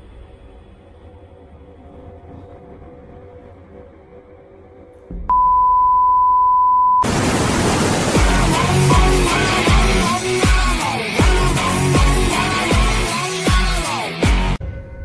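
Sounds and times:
quiet background music: 0:00.0 - 0:06.0
censor bleep tone: 0:05.3 - 0:07.1
electronic music with heavy bass: 0:08.0 - 0:14.6.

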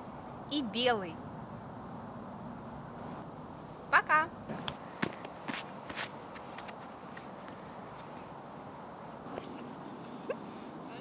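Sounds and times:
footsteps crunching in snow: 0:05.0 - 0:08.4.

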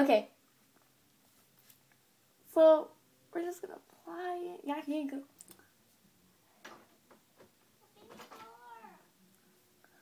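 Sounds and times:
faint clicks: 0:05.4 - 0:05.7
faint voice-like sound: 0:07.8 - 0:10.0.

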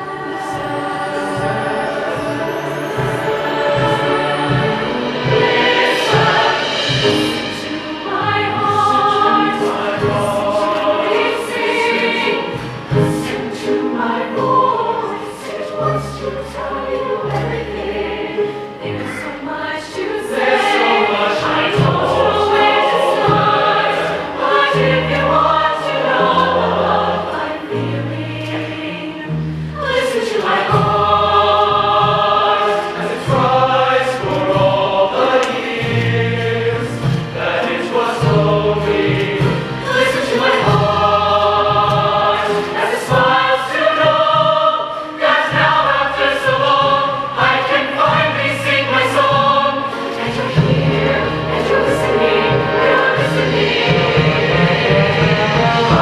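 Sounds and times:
choir singing in harmony: 0:00.0 - 0:56.0
instrumental accompaniment: 0:00.0 - 0:56.0.

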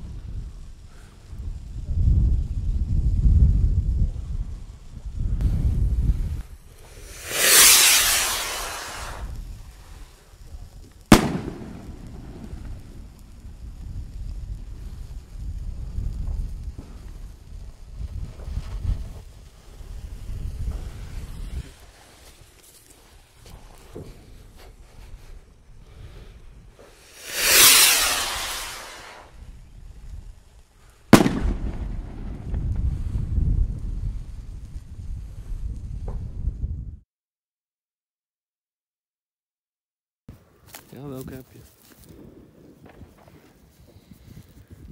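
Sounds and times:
firework rocket bang with echo: 0:06.8 - 0:09.6, 0:11.0 - 0:13.6, 0:26.9 - 0:29.4, 0:31.1 - 0:33.4.

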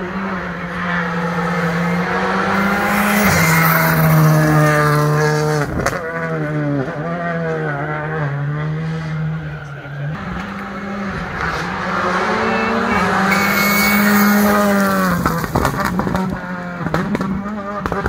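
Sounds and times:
rally car engine revving high: 0:00.0 - 0:18.0.

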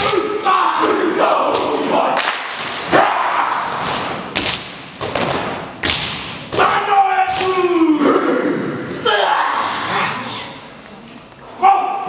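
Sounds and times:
shouted chants: 0:00.0 - 0:02.2, 0:02.9 - 0:03.9.

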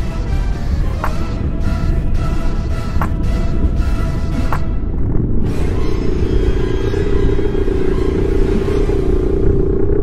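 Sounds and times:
submarine engine rumble: 0:00.0 - 0:10.0.

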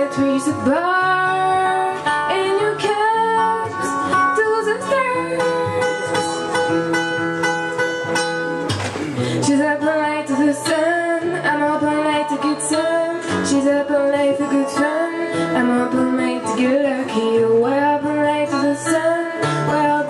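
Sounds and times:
woman singing pop song: 0:00.0 - 0:06.6, 0:09.2 - 0:20.0
guitar accompaniment: 0:00.0 - 0:20.0.

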